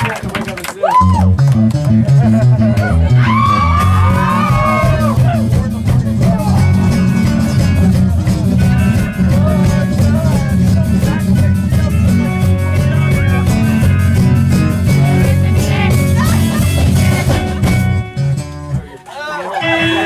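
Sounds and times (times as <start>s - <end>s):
bass guitar: 0.0s - 20.0s
electric guitar: 0.0s - 20.0s
drum beat: 1.0s - 18.3s, 19.6s - 20.0s
person singing: 2.6s - 17.4s.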